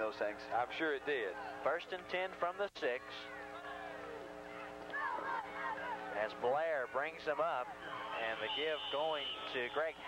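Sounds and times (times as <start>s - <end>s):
steady broadcast hum: 0.0s - 10.0s
people shouting: 3.3s - 6.9s, 7.6s - 9.6s.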